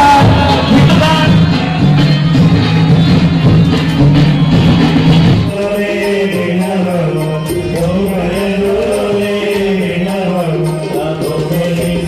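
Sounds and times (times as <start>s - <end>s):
devotional chanting: 0.0s - 1.6s, 5.5s - 12.0s.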